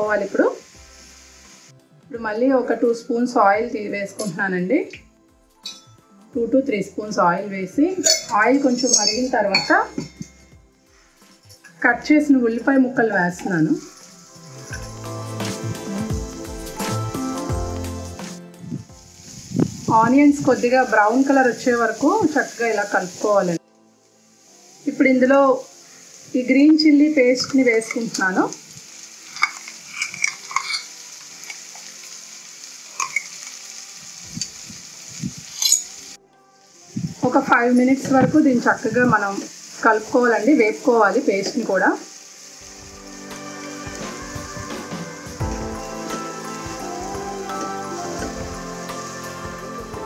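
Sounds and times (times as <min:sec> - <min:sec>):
onions sizzling in hot oil: 0:00.0 - 0:50.0
quiet background music: 0:00.0 - 0:50.0.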